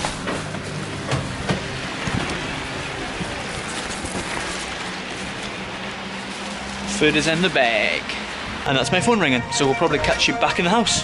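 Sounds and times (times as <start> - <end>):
steady rain on wet street: 0.0 - 11.0.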